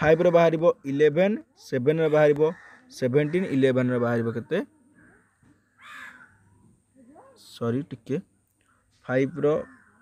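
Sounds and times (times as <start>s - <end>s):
faint bird call: 4.7s - 7.6s, 8.6s - 10.0s.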